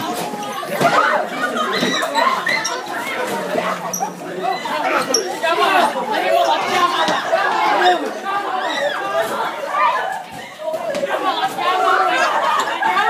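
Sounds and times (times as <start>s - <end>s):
crowd of students chattering: 0.0s - 13.0s.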